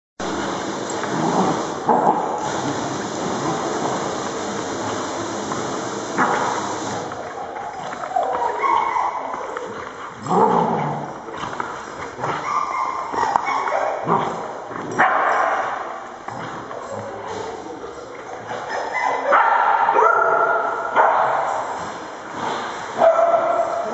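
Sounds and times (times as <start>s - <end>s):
dogs vocalizing: 0.4s - 15.0s, 16.3s - 19.5s.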